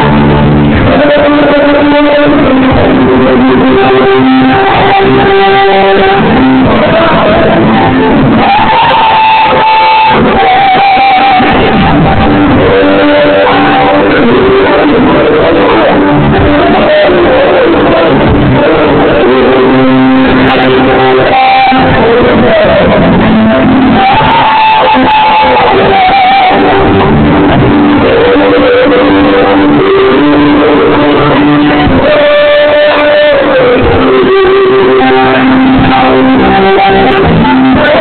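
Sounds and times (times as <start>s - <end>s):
guitar: 0.0s - 38.0s
live band music: 0.0s - 38.0s.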